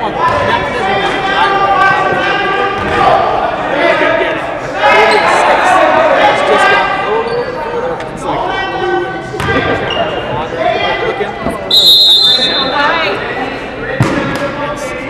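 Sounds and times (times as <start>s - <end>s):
players and spectators talking: 0.0s - 15.0s
referee's whistle blast: 11.7s - 12.9s.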